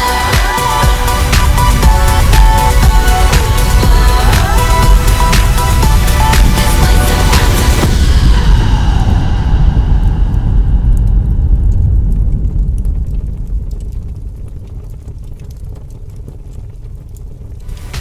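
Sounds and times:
deep rumble: 0:00.0 - 0:18.0
explosion boom: 0:01.2 - 0:15.7
faint crackles: 0:10.9 - 0:18.0.

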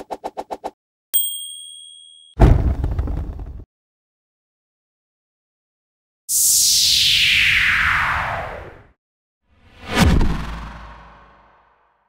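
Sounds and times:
typewriter bell ding: 0:01.2 - 0:02.4.

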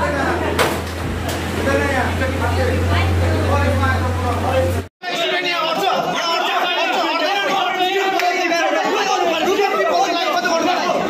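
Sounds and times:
young men shouting and arguing: 0:01.4 - 0:11.0.

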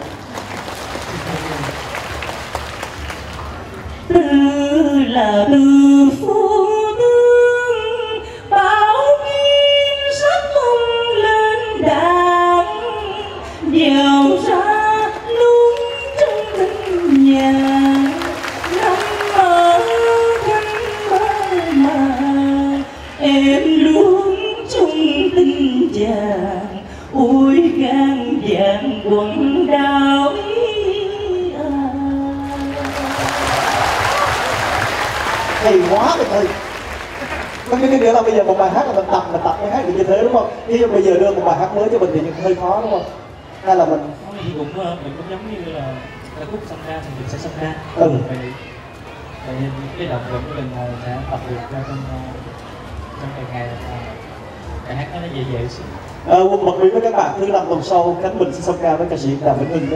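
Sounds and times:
audience applauding: 0:00.0 - 0:04.0, 0:15.8 - 0:23.2, 0:32.5 - 0:38.4
crowd cheering: 0:00.0 - 0:04.0, 0:15.2 - 0:23.3, 0:32.4 - 0:38.7
man singing in high voice: 0:04.1 - 0:33.3.

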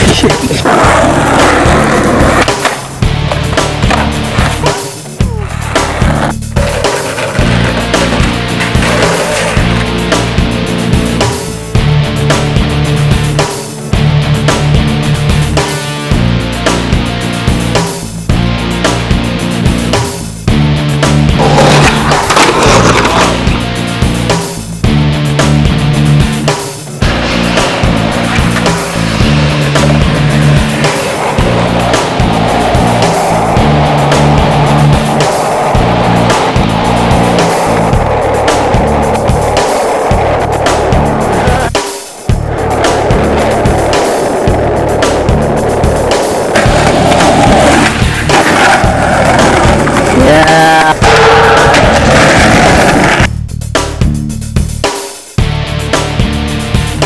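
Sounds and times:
skateboard wheels rolling on concrete: 0:00.0 - 0:53.3
loud music with steady bass: 0:00.0 - 0:57.0.

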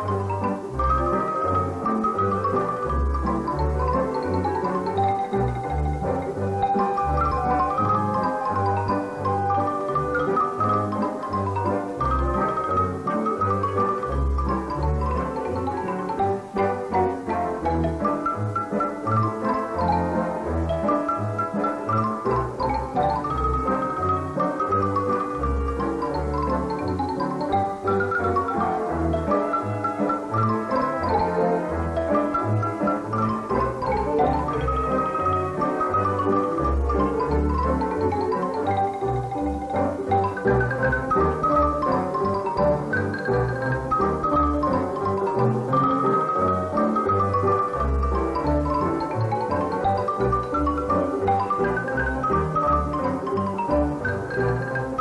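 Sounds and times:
accordion: 0:00.0 - 0:55.0
double bass plucking: 0:00.0 - 0:55.0
violins: 0:00.0 - 0:55.0
xylophone playing fast runs: 0:00.0 - 0:55.0.

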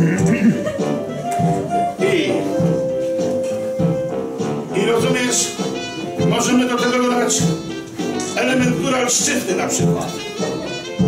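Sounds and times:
man humming: 0:00.0 - 0:00.8
music with held notes: 0:00.0 - 0:11.0.

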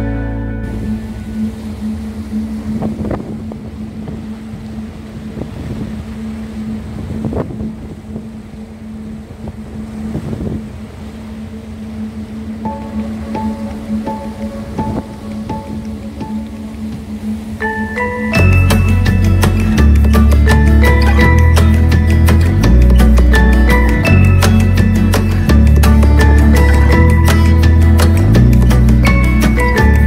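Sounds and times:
ferry engine humming: 0:00.0 - 0:30.0
water wash: 0:00.0 - 0:30.0
wind noise on microphone: 0:00.0 - 0:30.0
mallet percussion tune: 0:12.7 - 0:30.0.

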